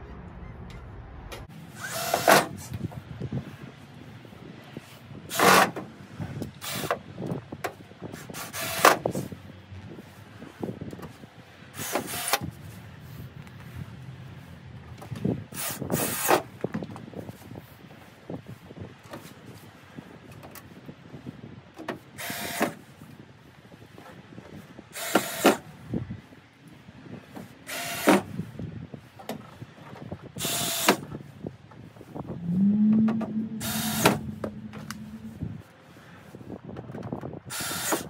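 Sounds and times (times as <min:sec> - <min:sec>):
cordless drill bursts: 0:01.8 - 0:02.5, 0:06.6 - 0:06.9, 0:11.8 - 0:12.4, 0:15.6 - 0:16.4, 0:22.2 - 0:22.8, 0:25.0 - 0:25.6, 0:27.6 - 0:28.3, 0:30.4 - 0:31.0, 0:33.6 - 0:34.2, 0:37.5 - 0:38.0
motor humming: 0:32.4 - 0:35.6.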